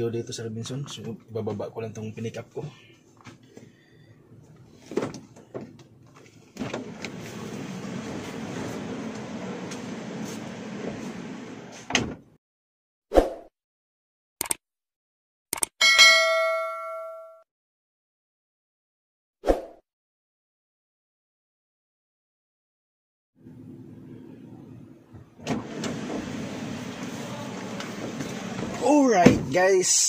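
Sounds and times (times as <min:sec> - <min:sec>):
car door opening and shutting: 0:04.8 - 0:12.4, 0:25.1 - 0:29.7
ringing metallic clang: 0:15.8 - 0:17.4.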